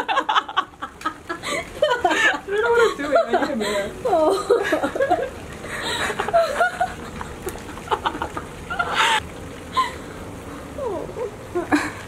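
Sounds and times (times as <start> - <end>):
woman laughing: 0.0 - 9.2, 11.6 - 12.0.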